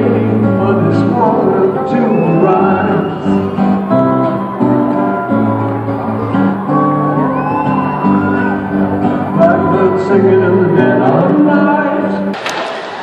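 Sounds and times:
person singing: 0:00.0 - 0:07.2, 0:08.3 - 0:12.4
acoustic guitar picking: 0:00.0 - 0:12.4.

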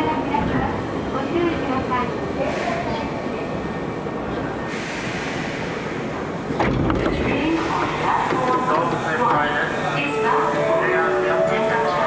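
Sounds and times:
train arriving and stopping: 0:00.0 - 0:12.0.

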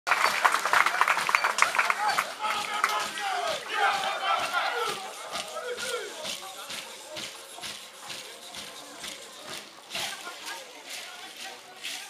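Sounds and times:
steady percussive beat: 0:00.1 - 0:12.0
group shouting and calling out: 0:01.6 - 0:07.3.

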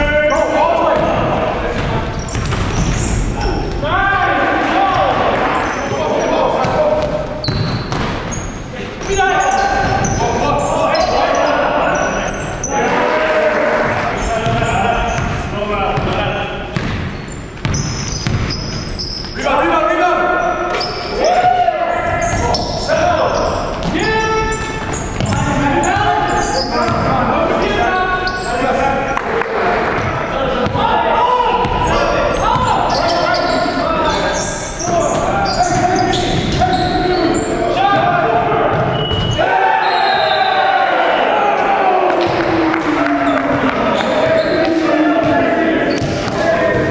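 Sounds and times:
players calling out: 0:00.0 - 0:46.9
basketball bouncing on hardwood: 0:14.4 - 0:15.4.

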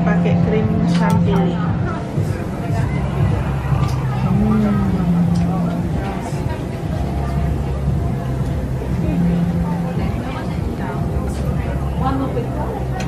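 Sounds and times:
indistinct voices: 0:00.0 - 0:13.0
steady low hum: 0:00.0 - 0:13.0.

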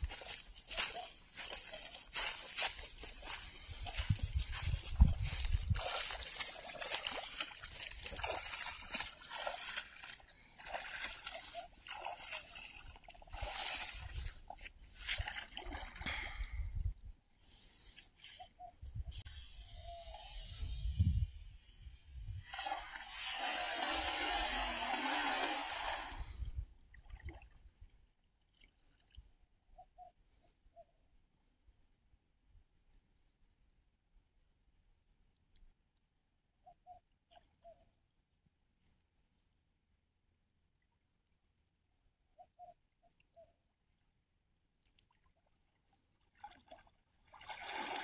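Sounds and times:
water sloshing around legs: 0:00.0 - 0:16.2
net splashing onto water: 0:46.3 - 0:48.0.

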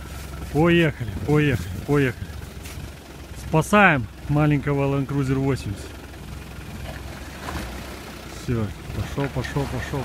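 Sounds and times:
suv engine low rumble: 0:00.0 - 0:10.0.

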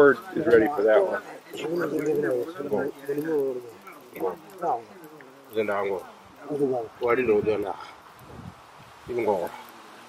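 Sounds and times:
man talking in wavering tones: 0:00.0 - 0:07.8.

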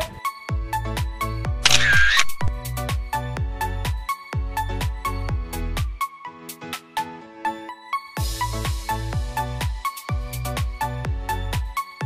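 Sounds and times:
upbeat pop music: 0:00.0 - 0:12.0
camera shutter sound effect: 0:01.6 - 0:02.6.

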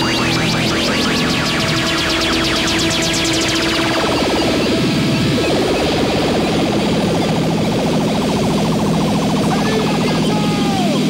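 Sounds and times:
pulsing synthesizer sweeping down: 0:00.0 - 0:11.0
second pulsing synth layer: 0:00.0 - 0:11.0.

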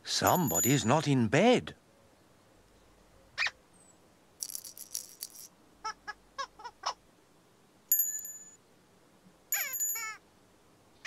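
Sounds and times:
shaker-like rattle: 0:04.4 - 0:05.6.

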